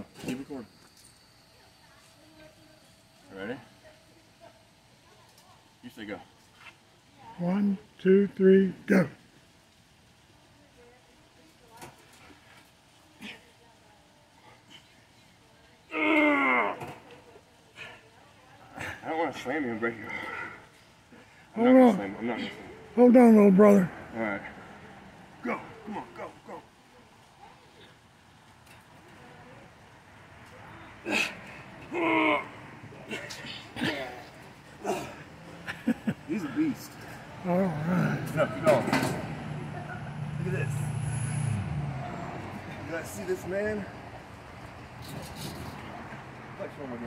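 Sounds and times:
men grunting and groaning: 15.9s - 16.9s, 19.9s - 20.8s, 21.6s - 26.6s, 31.0s - 39.5s
men straining: 15.9s - 17.0s, 19.9s - 26.7s, 30.9s - 39.8s.

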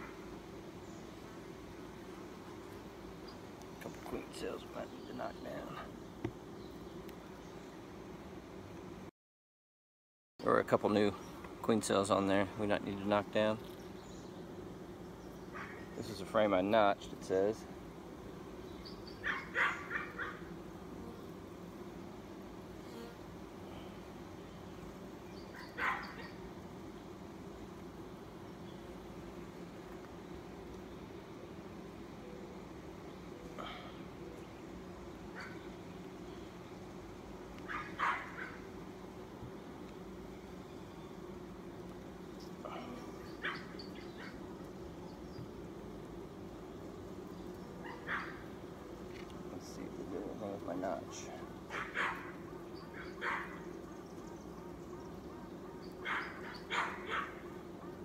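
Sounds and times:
bees buzzing: 0.0s - 9.1s, 10.4s - 58.0s
dog barking: 19.2s - 20.4s, 25.8s - 26.3s, 37.7s - 38.6s, 47.8s - 48.4s, 51.7s - 52.3s, 53.1s - 53.6s, 56.0s - 57.4s.

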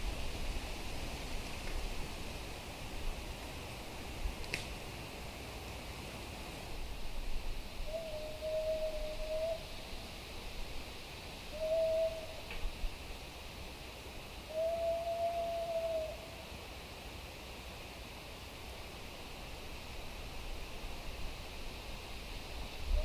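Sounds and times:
faint steady hiss: 0.0s - 23.0s.

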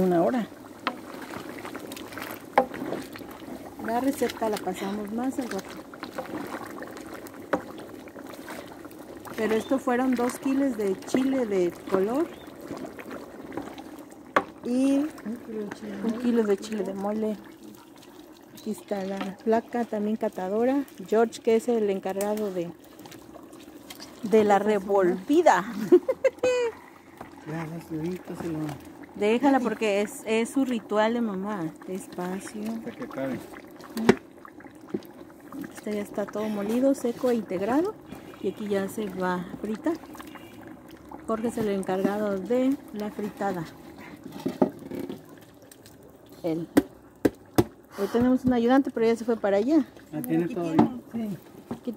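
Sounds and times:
wooden paddle stirring: 0.0s - 21.2s, 41.3s - 48.8s
paste sizzling and crackling in lard: 0.0s - 51.9s
paddle knocking on pot: 0.8s - 1.2s, 2.5s - 3.1s, 14.3s - 14.6s, 44.3s - 45.3s, 46.7s - 48.7s, 50.7s - 51.0s, 51.6s - 51.9s
wooden paddle scraping in clay pot: 43.0s - 45.3s.

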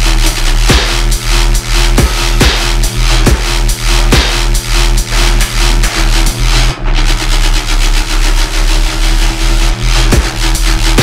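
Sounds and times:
dubstep music with distorted bass: 0.0s - 11.0s.

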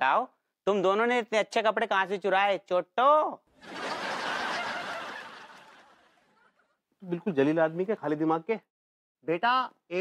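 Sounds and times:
crowd laughing: 3.6s - 6.8s.

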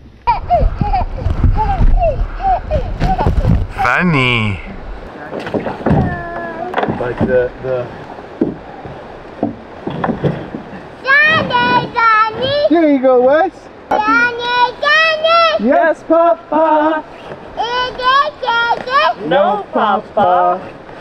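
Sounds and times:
wind rumble on microphone: 0.0s - 3.9s
small children calling and squealing: 5.9s - 6.8s, 11.0s - 12.8s, 13.9s - 15.7s, 17.2s - 19.3s.

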